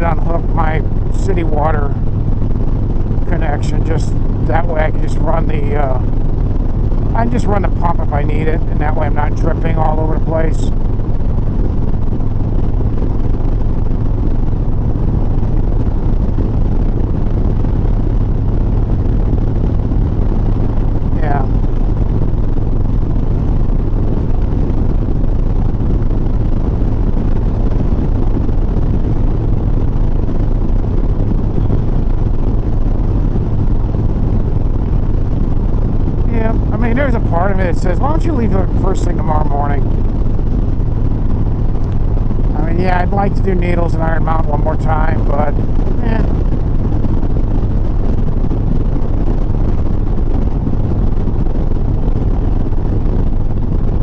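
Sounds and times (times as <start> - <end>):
motorcycle engine cruising: 0.0 - 54.0
road noise: 0.0 - 54.0.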